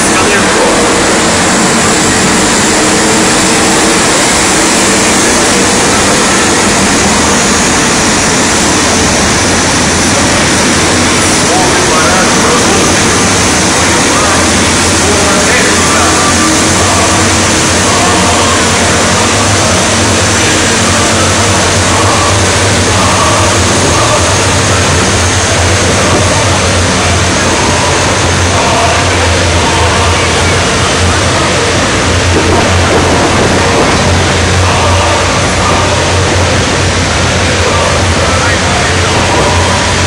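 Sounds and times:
crowd noise: 0:00.0 - 0:40.0
tank engines rumbling: 0:00.0 - 0:40.0.

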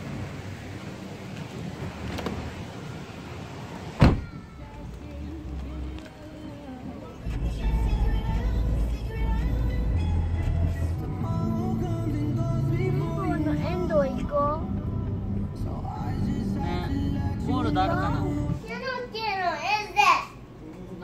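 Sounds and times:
background music with steady bass: 0:07.2 - 0:18.6.

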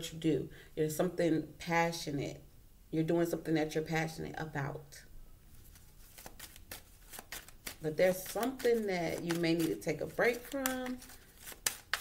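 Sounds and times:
cards being shuffled by hand: 0:05.6 - 0:12.0
person speaking: 0:07.4 - 0:11.9.

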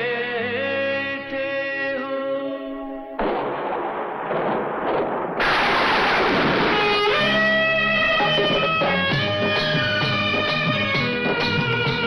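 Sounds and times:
thunder rolling: 0:03.2 - 0:08.7
sung and instrumental notes: 0:06.8 - 0:12.0.

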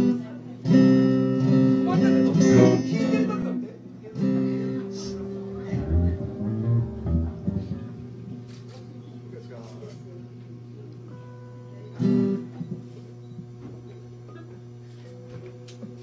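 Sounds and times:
electric and acoustic guitars: 0:00.0 - 0:09.8, 0:11.1 - 0:13.0
bass guitar notes: 0:00.8 - 0:03.6, 0:04.2 - 0:08.7.

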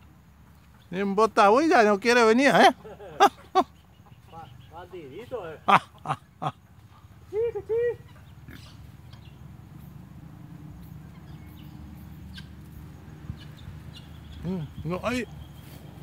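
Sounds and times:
low outdoor hum and hiss: 0:00.0 - 0:16.0
man calling out: 0:00.9 - 0:03.6, 0:14.4 - 0:15.3.

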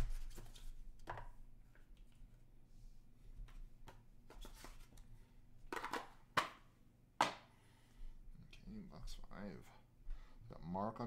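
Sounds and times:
cardboard and cards rustling: 0:03.5 - 0:05.0.

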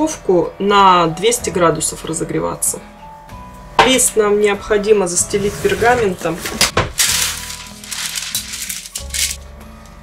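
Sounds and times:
background music: 0:00.0 - 0:10.0
baking parchment rustling: 0:05.6 - 0:09.4.

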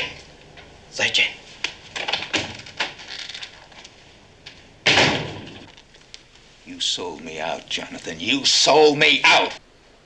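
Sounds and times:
door slamming shut: 0:02.0 - 0:03.1, 0:04.8 - 0:05.7.

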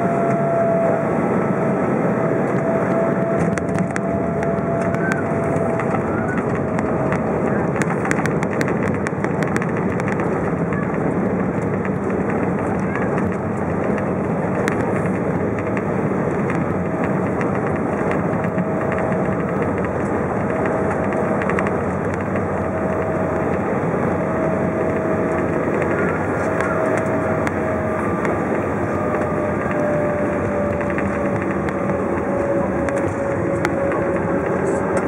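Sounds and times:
faint whine dropping in pitch: 0:00.0 - 0:35.0
jet engines and airflow rushing: 0:00.0 - 0:35.0.

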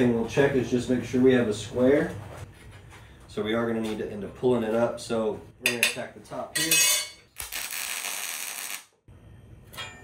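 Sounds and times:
welding arc crackling hiss: 0:07.4 - 0:09.0.

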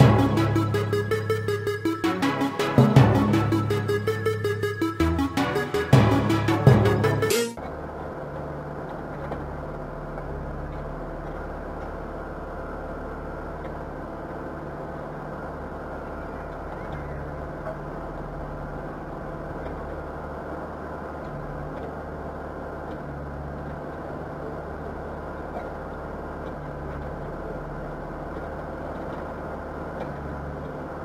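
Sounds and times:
backhoe diesel engine running: 0:00.0 - 0:31.0.

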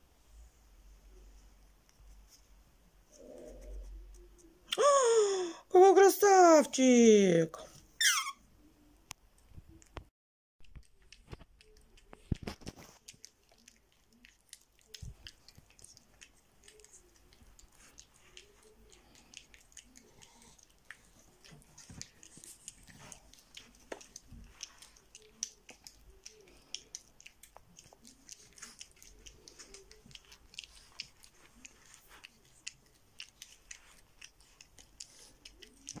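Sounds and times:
high squeak: 0:08.0 - 0:08.4
puppy chewing plush toy: 0:10.6 - 0:36.0.

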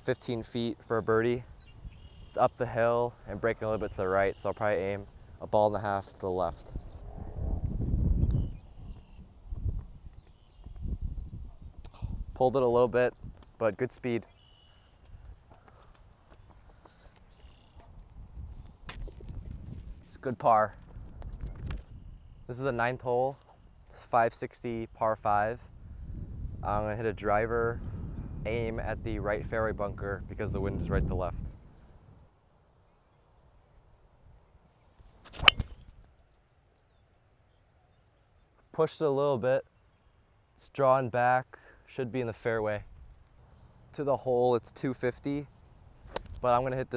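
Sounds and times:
wind buffeting microphone: 0:01.4 - 0:02.4, 0:06.4 - 0:13.6, 0:17.8 - 0:20.1, 0:20.7 - 0:22.3, 0:25.6 - 0:32.2
golf club swish: 0:35.1 - 0:35.8
golf club striking ball: 0:35.3 - 0:35.8.

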